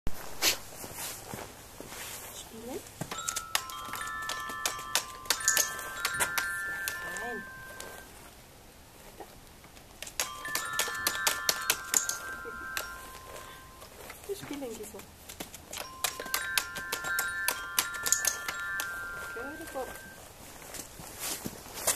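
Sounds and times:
paw tapping on keys: 3.0s - 8.0s, 9.7s - 20.1s
toy keyboard notes: 3.0s - 8.1s, 10.0s - 20.3s.

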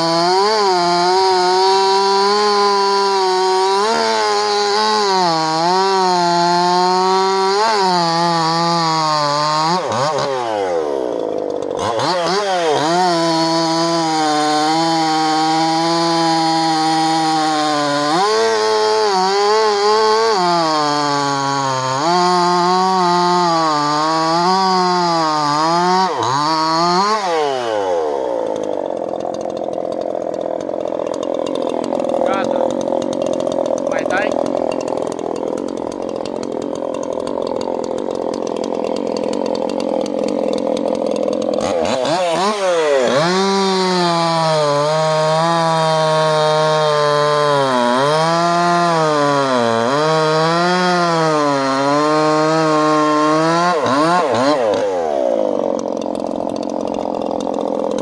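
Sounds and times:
chainsaw cutting logs: 0.0s - 58.0s
chainsaw engine idling: 0.0s - 58.0s.

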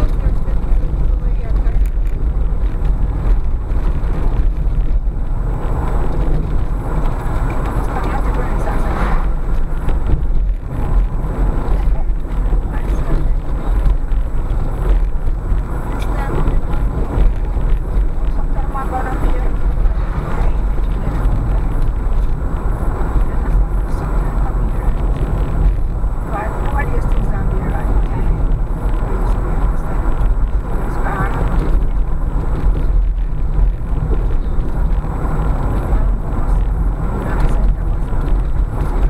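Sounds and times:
car engine and tyres rumbling: 0.0s - 39.0s
faint voices: 15.8s - 22.0s.

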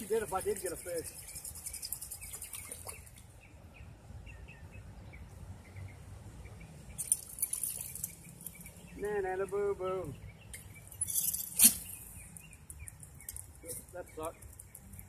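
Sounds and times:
small birds chirping: 0.0s - 15.0s.

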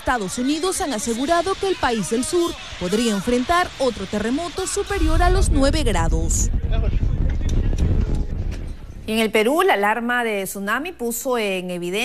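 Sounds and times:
building rumbling in earthquake: 5.0s - 9.5s.

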